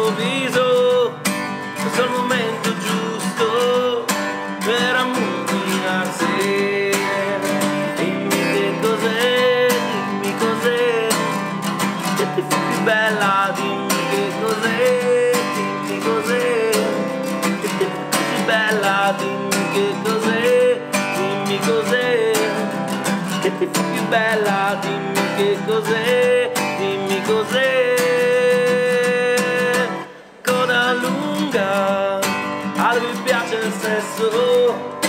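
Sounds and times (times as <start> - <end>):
acoustic guitar strumming: 0.0 - 35.0
man singing: 0.0 - 35.0.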